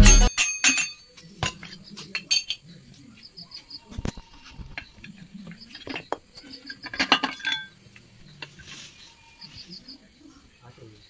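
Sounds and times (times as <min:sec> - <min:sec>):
metal gearbox parts clinking: 0:00.0 - 0:02.6, 0:05.8 - 0:07.8.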